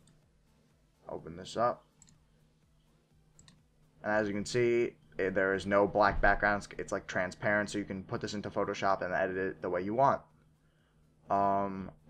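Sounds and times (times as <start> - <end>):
computer mouse clicks: 2.0 - 2.2, 3.4 - 3.6.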